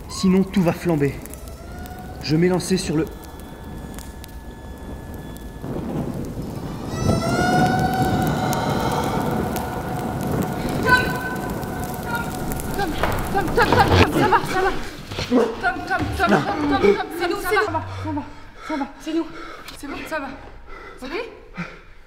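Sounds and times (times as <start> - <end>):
roar of flames: 0.0 - 15.6
voices: 0.0 - 20.4
sustained droning tone: 1.1 - 14.1.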